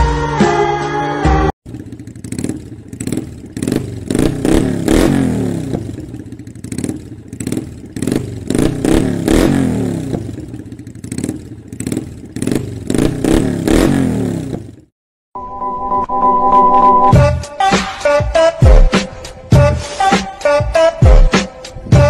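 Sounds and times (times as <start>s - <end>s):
motorcycle engine revving: 1.6s - 14.9s.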